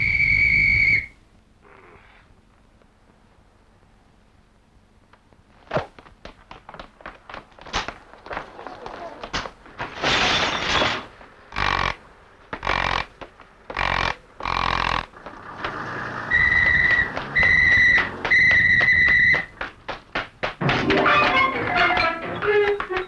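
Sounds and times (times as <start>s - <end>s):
quick run of clicks: 11.6s - 23.0s
music: 20.7s - 23.0s.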